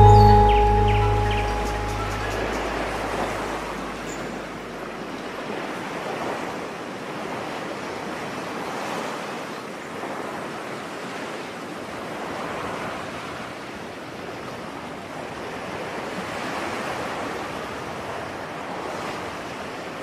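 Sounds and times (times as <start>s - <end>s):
ocean waves rushing: 0.0s - 9.3s.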